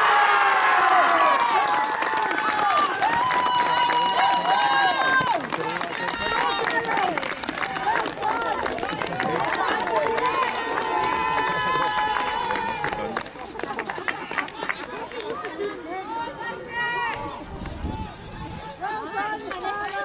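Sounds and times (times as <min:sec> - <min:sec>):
people shouting and cheering: 0:00.0 - 0:20.0.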